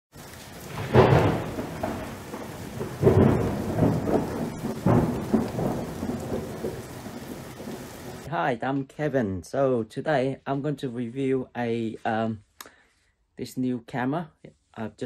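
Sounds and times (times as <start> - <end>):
rain hissing: 0.1 - 8.3
thunder rolling: 0.2 - 8.3.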